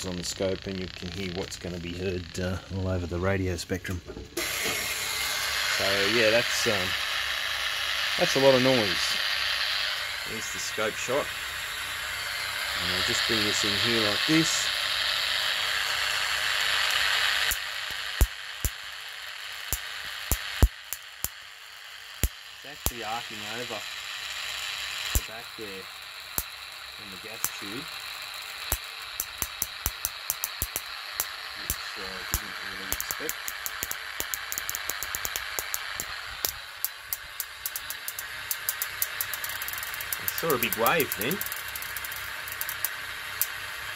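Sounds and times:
dense spark hiss: 0.0s - 43.9s
sharp spark snaps: 4.4s - 43.9s.

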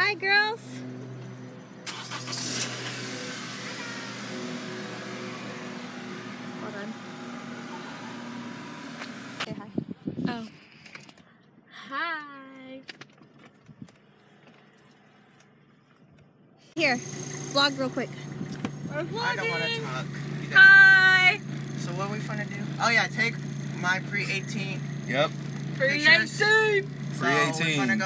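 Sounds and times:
street traffic noise: 0.0s - 28.0s.

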